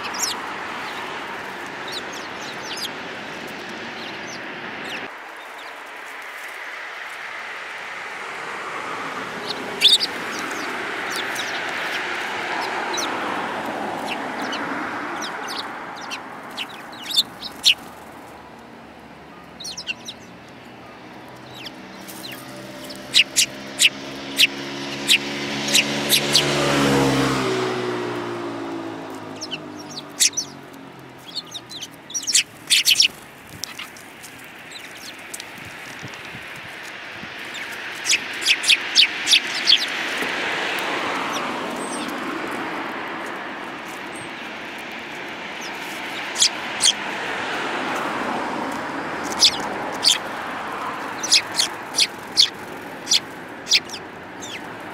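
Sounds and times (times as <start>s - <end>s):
sparrows chirping: 0.0s - 54.9s.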